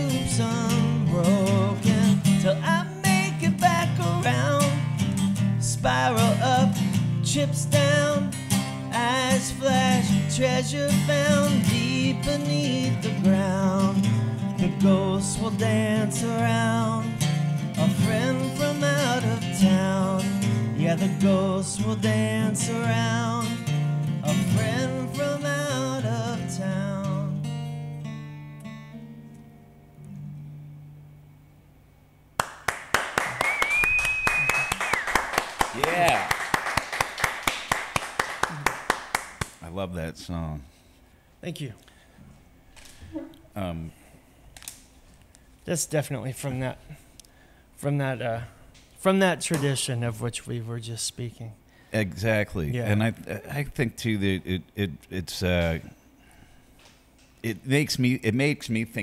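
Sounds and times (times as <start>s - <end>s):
man singing folk song: 0.0s - 27.6s
strummed acoustic guitar: 0.0s - 31.1s
people clapping: 32.4s - 39.6s.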